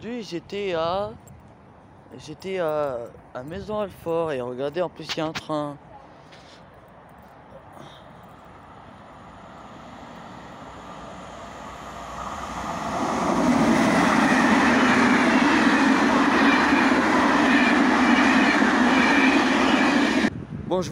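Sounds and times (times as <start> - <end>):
train rumbling past: 7.8 - 20.5
wheels rushing on rails: 8.4 - 20.3.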